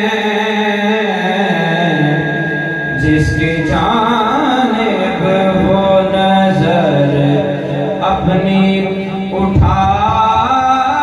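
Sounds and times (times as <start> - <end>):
man singing into a microphone: 0.0 - 11.0.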